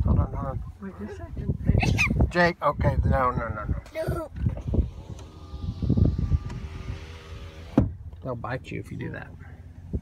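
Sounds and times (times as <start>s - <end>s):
low rumbling: 2.8s - 10.0s
power window motor whine: 4.4s - 8.0s.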